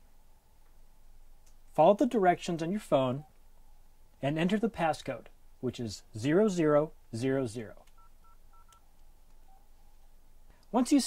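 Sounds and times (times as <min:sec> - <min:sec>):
phone keypad tones: 0:08.0 - 0:08.8.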